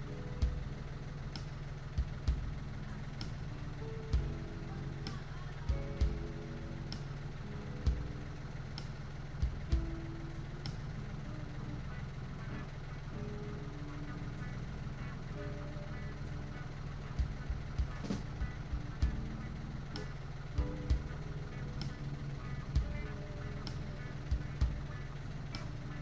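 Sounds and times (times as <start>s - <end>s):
faint music: 0.0s - 26.0s
tractor engine idling: 0.0s - 26.0s
sharp engine knocks: 17.0s - 26.0s.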